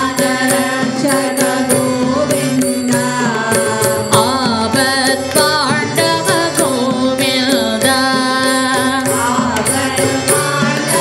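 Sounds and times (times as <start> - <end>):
hand drums playing: 0.0 - 11.0
harmonium: 0.0 - 11.0
voices singing devotional song: 0.0 - 11.0.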